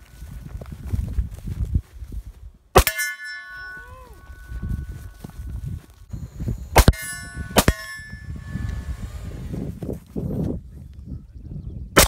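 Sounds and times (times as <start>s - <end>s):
bullet hitting steel target: 2.8s - 3.9s, 6.8s - 8.6s
steel target ringing: 2.8s - 5.3s, 6.7s - 8.7s.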